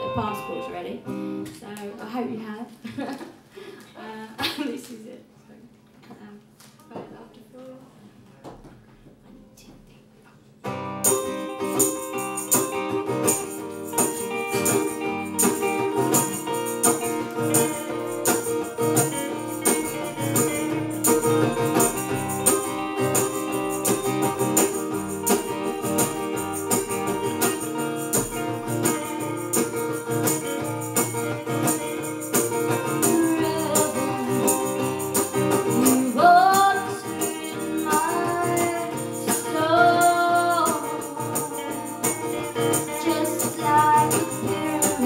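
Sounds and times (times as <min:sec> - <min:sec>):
live band playing upbeat song: 0:11.0 - 0:45.0
tambourine shaken: 0:11.0 - 0:45.0.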